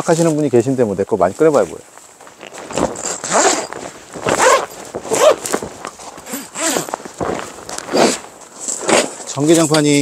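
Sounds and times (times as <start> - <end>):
tent zipper pulled: 2.4 - 9.5.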